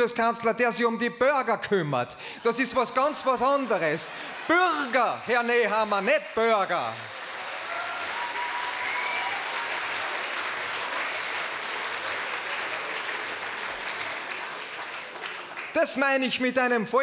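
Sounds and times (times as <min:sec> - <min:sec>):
audience applauding: 0:02.5 - 0:16.2.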